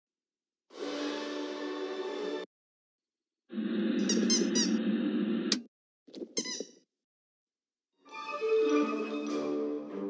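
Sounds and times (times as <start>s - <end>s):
squeaky chirps: 6.4s - 6.8s.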